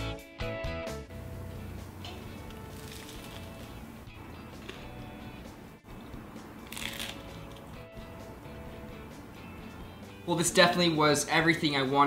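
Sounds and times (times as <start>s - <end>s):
background music: 0.0s - 12.0s
toasted sandwich crunch: 2.3s - 5.2s, 6.6s - 7.8s.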